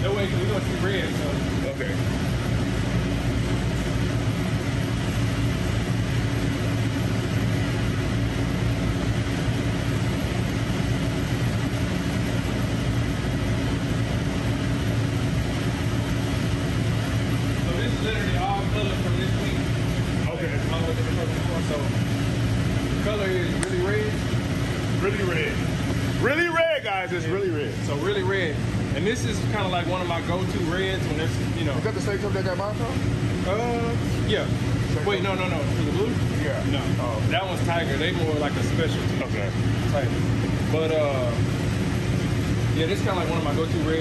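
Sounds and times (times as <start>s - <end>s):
equipment humming: 0.0s - 44.0s.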